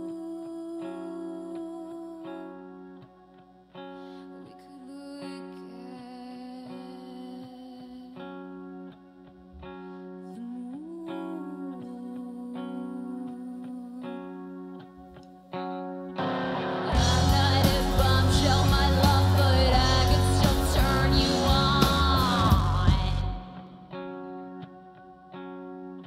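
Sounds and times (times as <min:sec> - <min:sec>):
electric guitar notes: 0:00.0 - 0:26.0
rock band with drums: 0:16.2 - 0:23.8.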